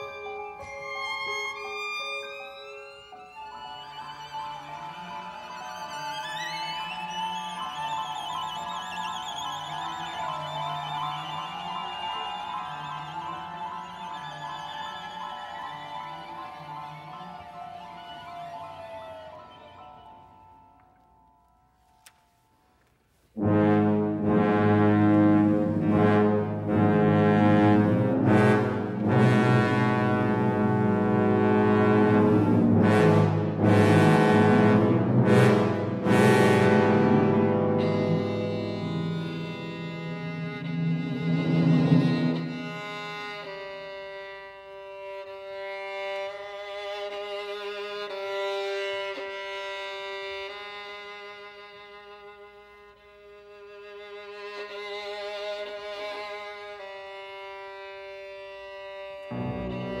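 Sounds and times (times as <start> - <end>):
violin long bowed tone: 0.0 - 20.9, 23.4 - 60.0
orchestra holding low chord: 23.4 - 43.5, 59.2 - 60.0.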